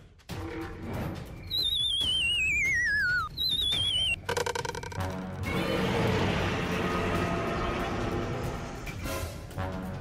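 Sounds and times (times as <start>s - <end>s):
cartoon warbling whistle sliding down: 1.4s - 4.2s.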